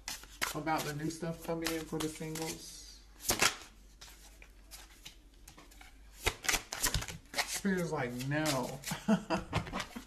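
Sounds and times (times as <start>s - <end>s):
cards being shuffled: 0.0s - 9.0s.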